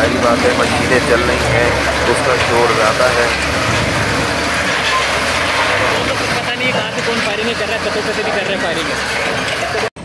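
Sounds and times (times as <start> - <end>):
voices: 0.0 - 9.9
wheel loader diesel engine: 0.0 - 10.0.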